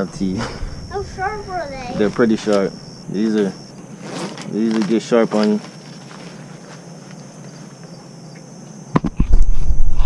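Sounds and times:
insects droning in grass: 0.0 - 10.0.

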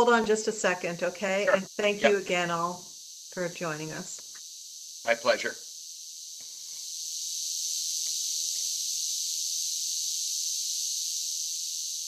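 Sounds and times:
high-pitched hissing drone: 0.0 - 12.0.

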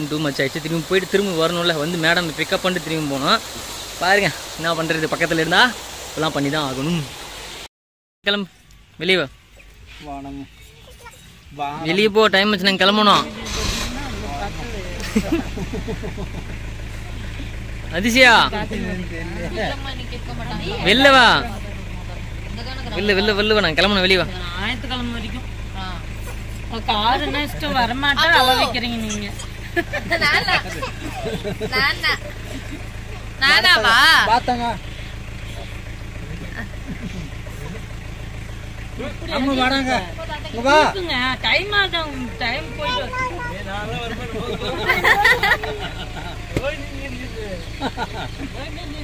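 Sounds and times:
car engine idling: 0.0 - 7.7, 8.3 - 49.0.

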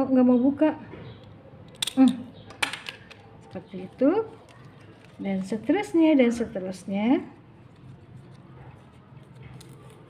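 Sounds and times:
handheld stapler clicking: 1.7 - 3.1.

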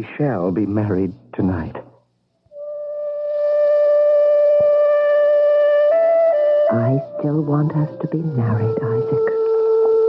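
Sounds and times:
held music note: 6.4 - 10.0.

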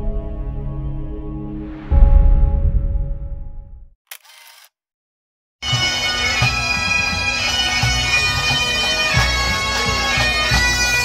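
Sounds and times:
bagpipes playing: 5.6 - 11.0.

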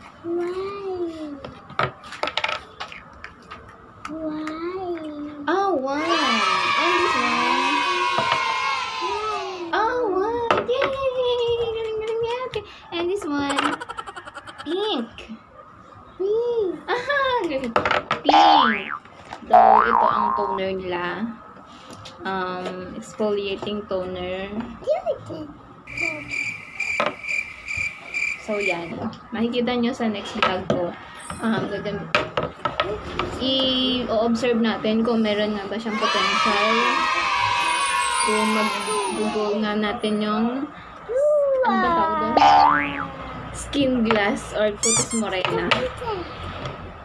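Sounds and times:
insect chirping: 25.9 - 28.9.

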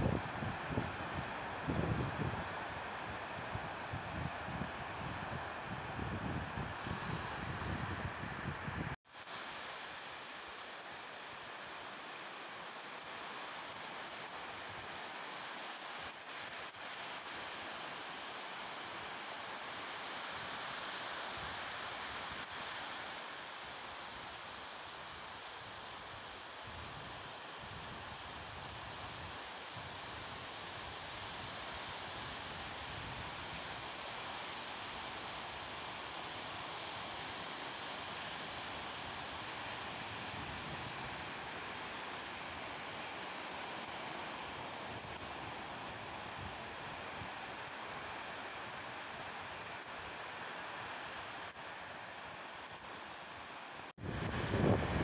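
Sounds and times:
waves washing onto sand beach: 0.0 - 8.4, 9.1 - 55.0.

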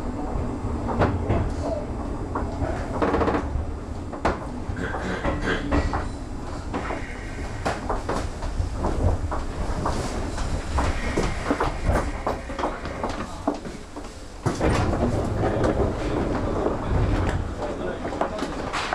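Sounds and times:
knocks and clatter: 2.3 - 18.9
indistinct voices: 10.2 - 18.9.

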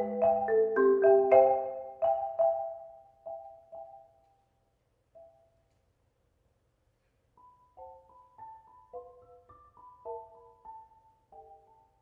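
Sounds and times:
marimba chord strokes: 0.0 - 3.9.

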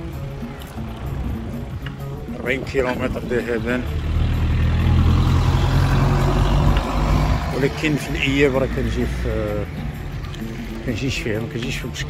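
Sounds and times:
car engine hum: 0.0 - 12.0
tyres rushing on road: 0.0 - 12.0.

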